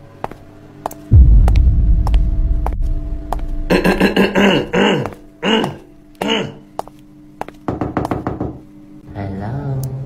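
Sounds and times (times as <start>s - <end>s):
knocking on a door: 7.7s - 8.6s.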